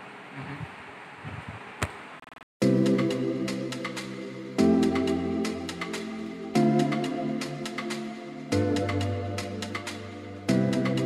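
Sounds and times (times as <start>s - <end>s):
steady buzzing room noise: 0.0s - 2.4s.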